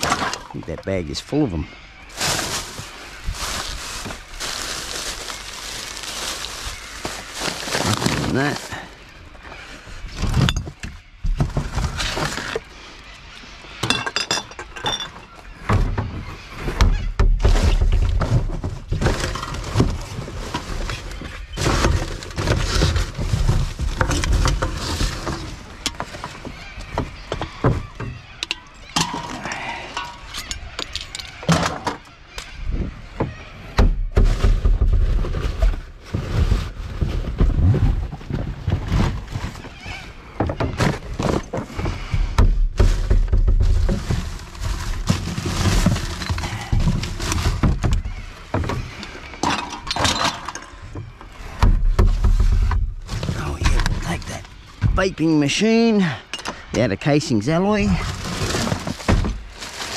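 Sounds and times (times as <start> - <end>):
rubbish rustling and crinkling: 0.0 - 59.9.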